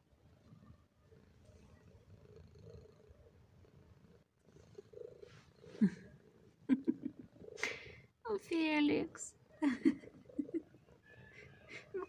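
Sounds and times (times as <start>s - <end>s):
cat purring: 0.3s - 7.7s, 9.3s - 11.0s.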